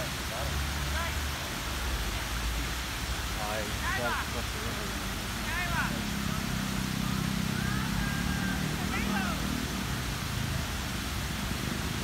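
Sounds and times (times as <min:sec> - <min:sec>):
fountain jets hissing: 0:00.0 - 0:12.0.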